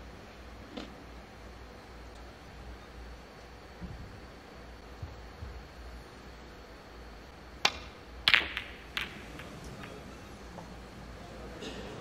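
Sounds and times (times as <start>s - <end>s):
snooker balls clicking together: 7.6s - 11.0s
cue striking ball: 7.6s - 12.0s.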